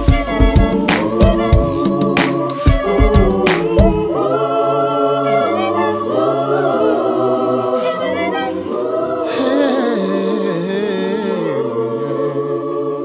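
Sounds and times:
voices singing in harmony: 0.0 - 13.0.

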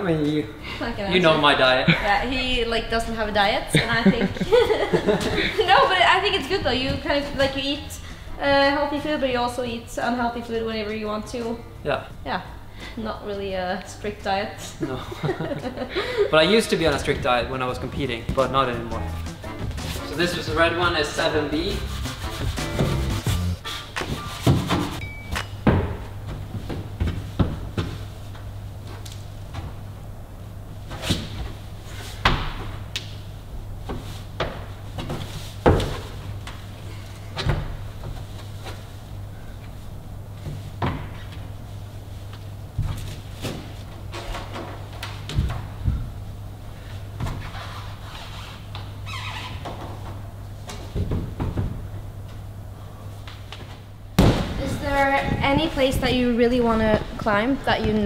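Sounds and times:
background music: 18.4 - 23.7.

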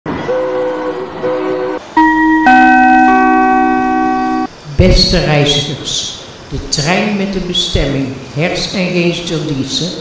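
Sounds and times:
train horn blasts: 0.1 - 4.5.

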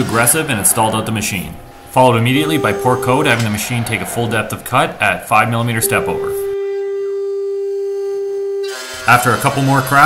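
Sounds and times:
cnc router milling metal whine: 2.2 - 5.0, 5.7 - 10.0.

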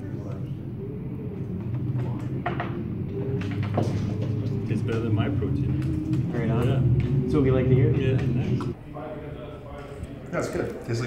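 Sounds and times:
murmured talking: 0.0 - 11.0
steady low hum: 0.0 - 11.0.

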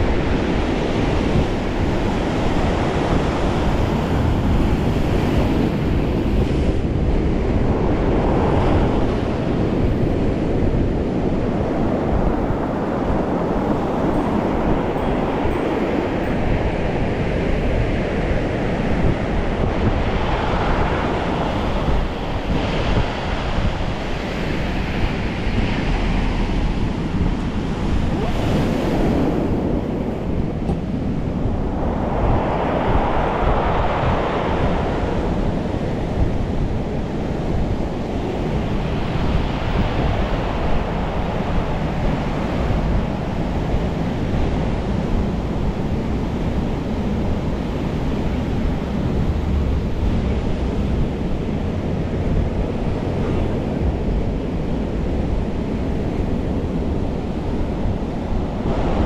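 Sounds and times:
ocean surf against seawall: 0.0 - 59.0
wind rumble on microphone: 0.0 - 59.0.

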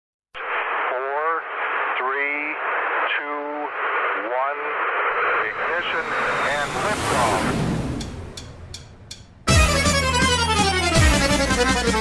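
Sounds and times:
radio static hiss: 0.4 - 7.7.

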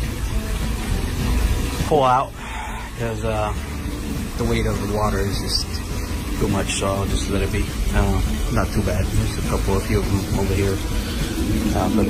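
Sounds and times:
man speaking: 1.9 - 3.6, 4.4 - 5.8, 6.4 - 10.9, 11.6 - 12.0.

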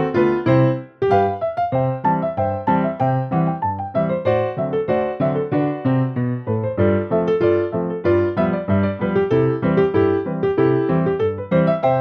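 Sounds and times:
ragtime piano: 0.0 - 12.0.

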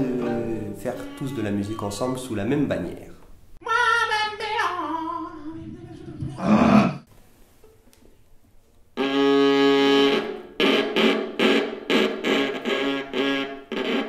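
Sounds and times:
bowed viola: 0.0 - 2.3, 9.0 - 14.0.

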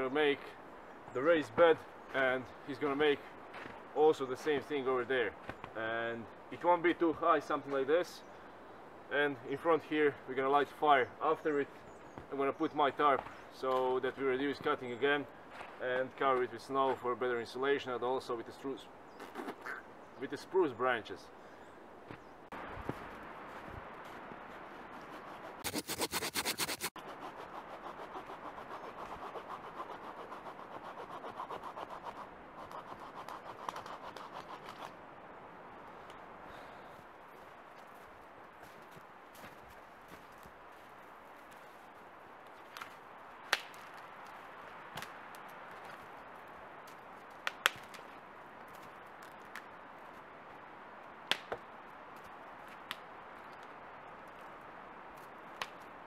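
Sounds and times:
saw scraping branches: 24.5 - 35.0
twigs snapping: 42.5 - 46.1, 46.8 - 49.7.

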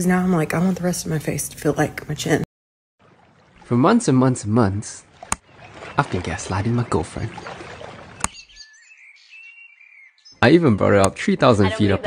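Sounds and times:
birds chirping and whistling: 5.4 - 10.6.

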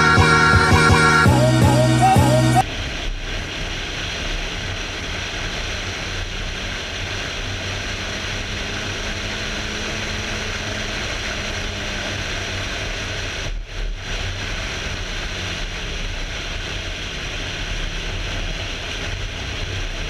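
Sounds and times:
low engine drone: 0.0 - 20.0.

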